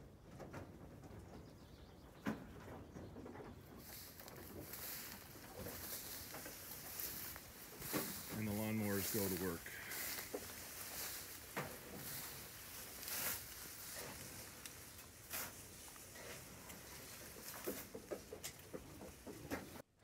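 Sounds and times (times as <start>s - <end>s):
sheep rustling through tall stalks: 3.7s - 19.8s.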